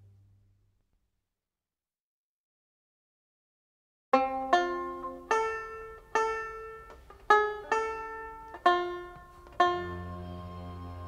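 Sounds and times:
plucked string instrument notes: 4.2s - 11.0s.

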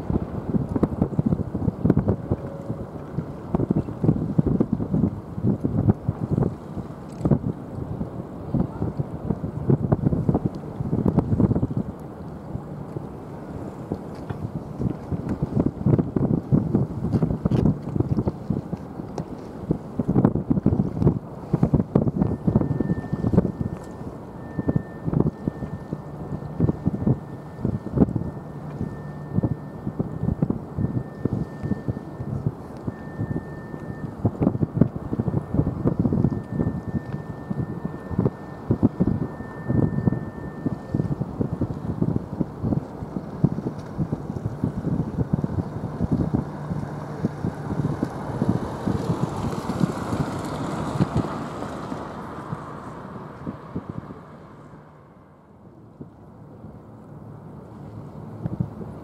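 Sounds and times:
wind buffeting microphone: 0.0s - 59.0s
faint high steady tone: 2.0s - 4.0s, 22.2s - 42.8s.

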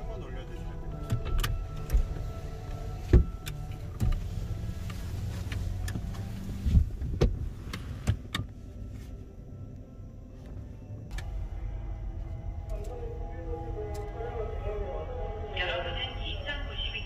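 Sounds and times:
car cabin rumble: 0.0s - 17.0s.

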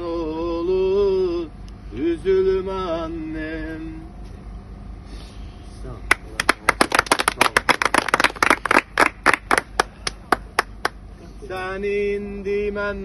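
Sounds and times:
hand clapping: 6.1s - 11.0s.

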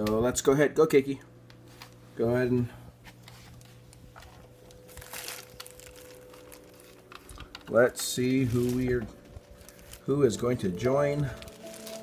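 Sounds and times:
low electrical hum: 0.0s - 12.0s
faint rustling and crinkling: 1.5s - 12.0s.

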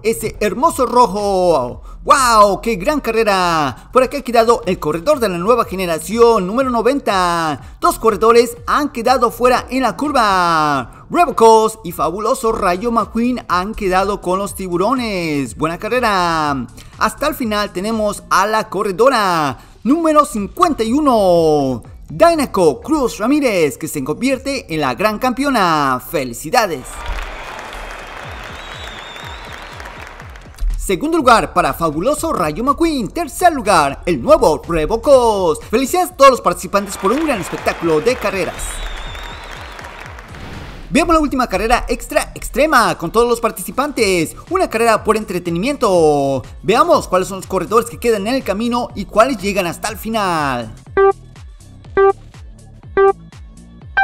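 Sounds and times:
thumping background music: 0.0s - 25.9s, 26.9s - 54.0s
crowd applause: 26.8s - 30.6s, 36.8s - 40.4s
whistle: 27.2s - 30.1s, 38.5s - 39.9s, 51.0s - 51.2s, 52.0s - 52.2s, 53.0s - 53.2s
electronic music with steady beat: 50.8s - 51.2s, 51.9s - 53.3s
countdown beeps: 50.9s - 51.2s, 52.0s - 52.2s, 52.9s - 53.2s
higher-pitched go tone: 51.0s - 51.2s, 52.0s - 52.2s.

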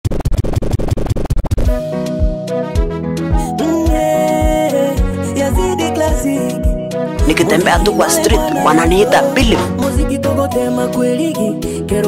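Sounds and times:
song with held chord: 3.4s - 11.9s
dj scratching: 7.3s - 9.7s.

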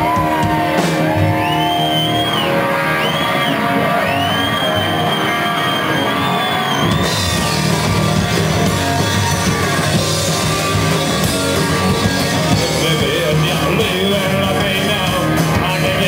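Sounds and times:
electric guitar lead note bending: 0.0s - 16.0s
live rock band playing: 0.0s - 16.0s.

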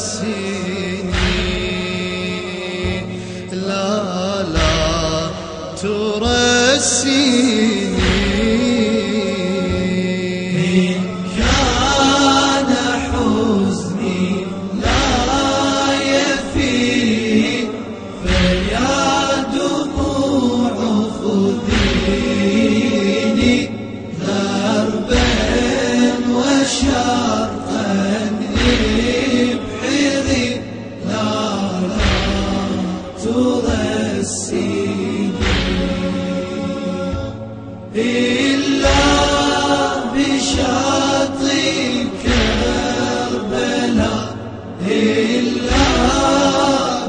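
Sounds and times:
men chanting a slow lament: 0.0s - 47.0s
deep drum beat: 1.0s - 3.2s, 4.4s - 10.0s, 11.2s - 27.7s, 28.4s - 37.7s, 38.4s - 44.4s, 45.3s - 47.0s.

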